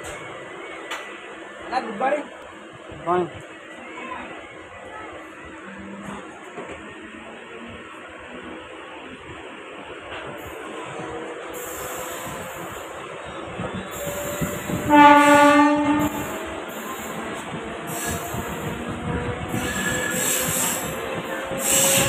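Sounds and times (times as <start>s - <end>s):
train wheels rumbling on track: 4.6s - 22.0s
train horn: 13.9s - 17.2s.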